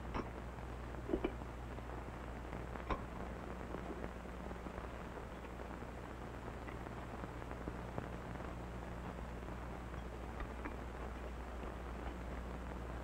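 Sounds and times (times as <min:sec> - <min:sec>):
film soundtrack hiss and hum: 0:00.0 - 0:13.0.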